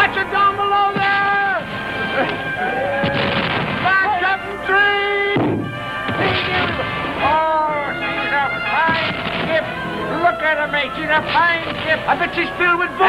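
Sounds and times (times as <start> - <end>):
held music notes: 0.0 - 13.0
cannon blasts: 3.0 - 4.1, 5.4 - 7.2, 8.8 - 9.6.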